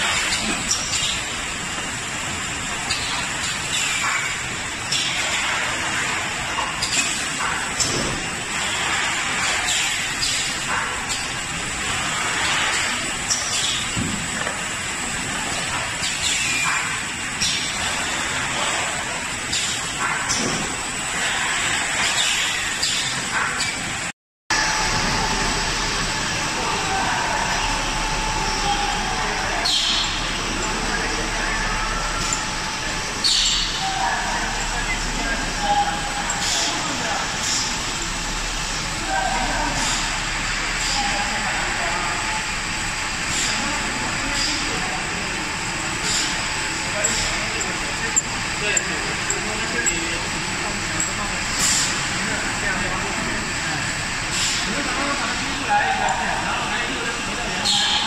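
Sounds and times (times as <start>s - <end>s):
conveyor hum with faint whine: 0.0s - 58.0s
steady machine din: 24.5s - 55.6s.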